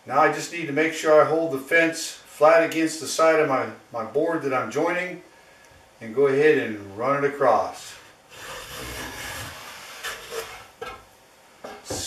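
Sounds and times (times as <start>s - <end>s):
hand plane scraping wood: 8.3s - 11.0s.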